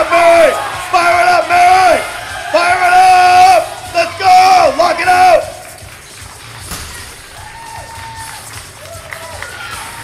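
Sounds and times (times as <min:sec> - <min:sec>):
crowd noise: 0:00.0 - 0:10.0
barbell thud on platform: 0:06.6 - 0:07.4.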